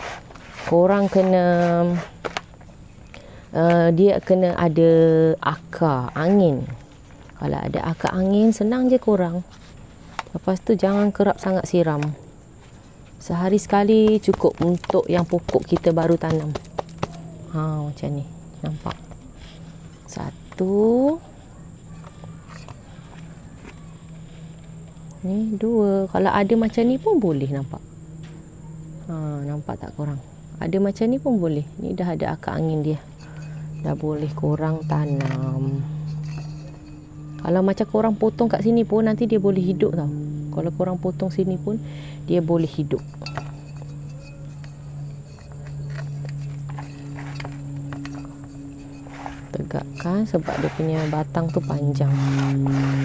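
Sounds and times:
steady low hum: 0:00.0 - 0:53.0
hands tapping and scraping soil: 0:13.9 - 0:17.2.

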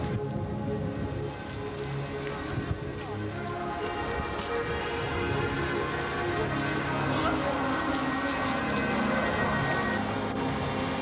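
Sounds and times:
building fire crackling and hissing: 0:00.0 - 0:11.0.

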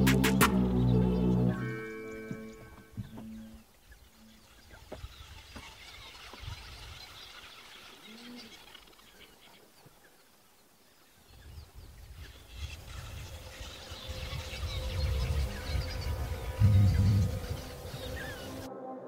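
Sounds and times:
wild birds chirping: 0:00.0 - 0:18.7
low rumbling noise: 0:13.3 - 0:18.7.

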